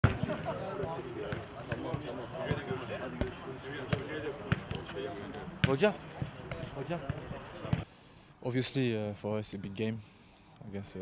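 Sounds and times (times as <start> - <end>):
players' voices calling: 0.0 - 7.8.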